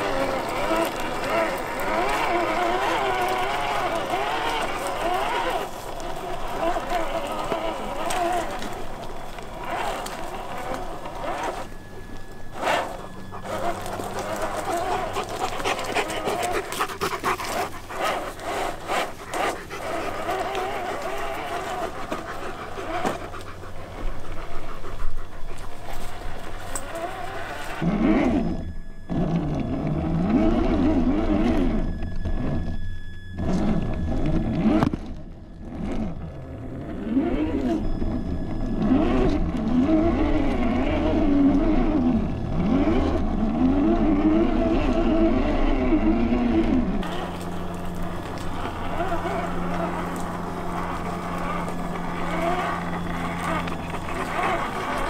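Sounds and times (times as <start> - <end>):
rustling: 0.0 - 29.6, 46.4 - 55.0
electric motor whining: 0.0 - 55.0
dog panting: 12.6 - 27.8.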